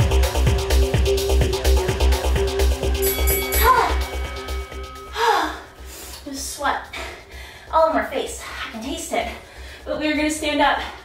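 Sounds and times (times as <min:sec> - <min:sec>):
music with bass beat: 0:00.0 - 0:06.3
woman panting: 0:05.1 - 0:10.0.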